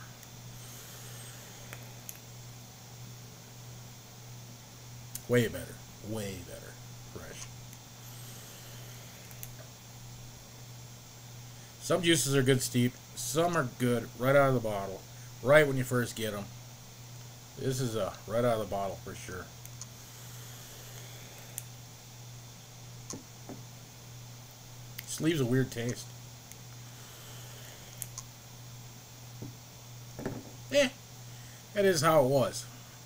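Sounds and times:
faint hiss: 0:00.0 - 0:33.0
steady low hum: 0:00.0 - 0:33.0
soft clicks: 0:19.6 - 0:19.9, 0:28.0 - 0:28.3.

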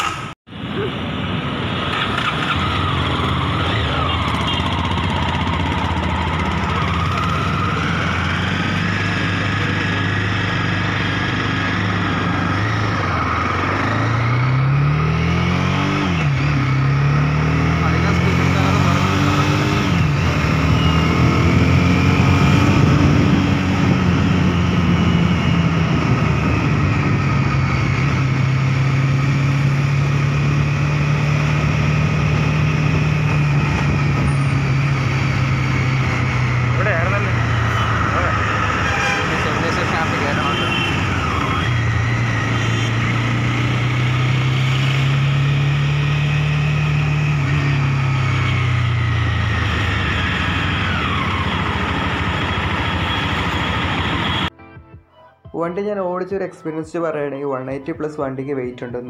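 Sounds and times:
motorcycle engine revving: 0:01.8 - 0:54.5.

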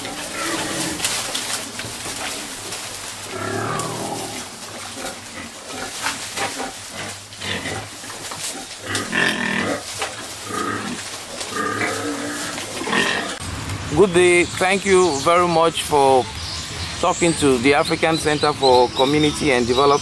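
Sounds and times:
pig calls: 0:00.0 - 0:01.3, 0:02.2 - 0:13.4
pigs chewing and crunching: 0:00.0 - 0:13.4
rustling of foliage: 0:00.0 - 0:20.0.

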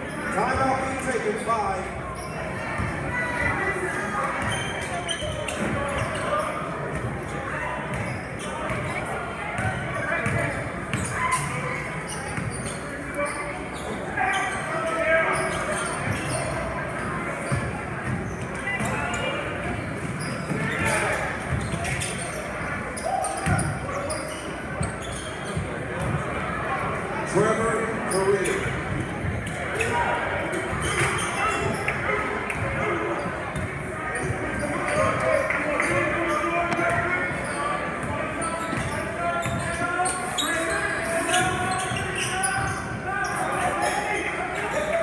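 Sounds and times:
spectators talking: 0:00.0 - 0:45.0.

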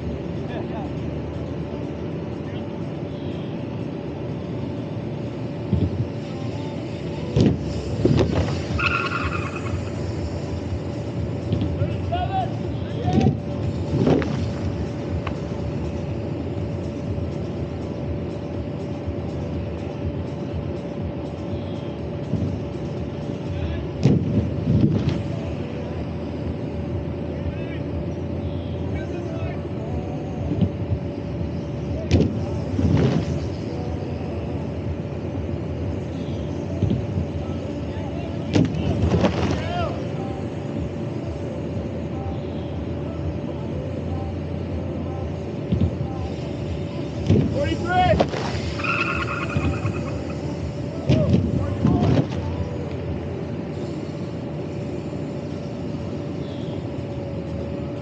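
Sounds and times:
generator drone: 0:00.0 - 0:58.0
bikes landing on airbag: 0:07.3 - 0:08.8, 0:13.2 - 0:14.8, 0:24.0 - 0:25.2, 0:32.0 - 0:33.5, 0:38.5 - 0:39.8, 0:47.2 - 0:48.8, 0:51.0 - 0:52.5.

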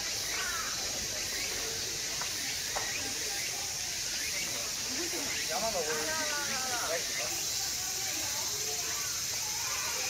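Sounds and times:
high-pitched hiss: 0:00.0 - 0:10.0.

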